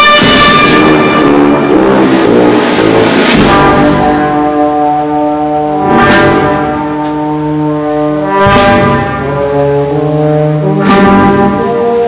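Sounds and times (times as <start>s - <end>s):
brass band playing slow march: 0.0s - 12.0s
low brass sustained notes: 0.0s - 12.0s.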